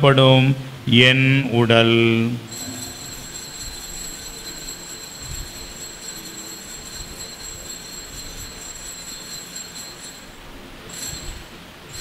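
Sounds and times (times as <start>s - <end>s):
altar bell ringing: 2.5s - 12.0s.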